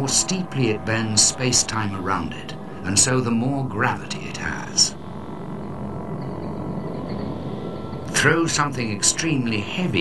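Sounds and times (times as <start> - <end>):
low rumbling drone: 0.0 - 10.0.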